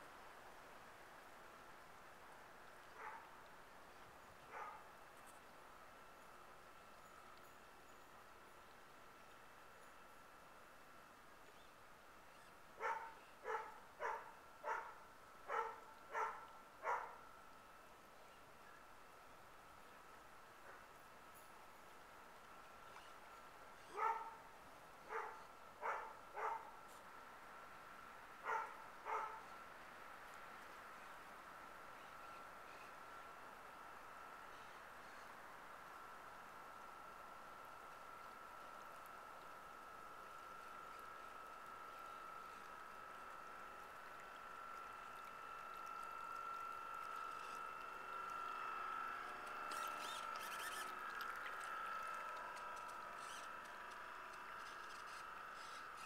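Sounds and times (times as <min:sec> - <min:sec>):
electric motor high whine: 0:40.2 - 0:56.0
squeaky chirps: 0:49.7 - 0:50.9.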